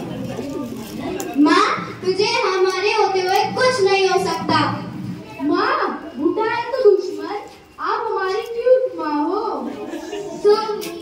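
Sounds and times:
child talking into microphone: 0.5s - 11.0s.

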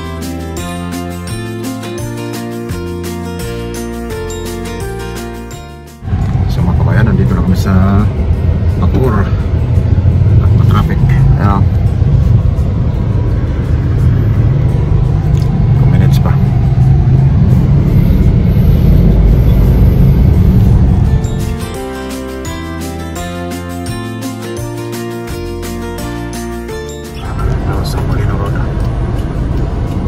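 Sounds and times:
car road and engine noise: 0.0s - 30.0s
music: 0.0s - 30.0s.

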